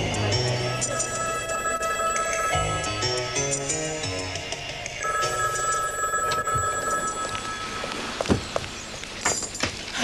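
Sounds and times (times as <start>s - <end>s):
desk telephone ringing: 0.8s - 3.9s, 5.0s - 8.0s.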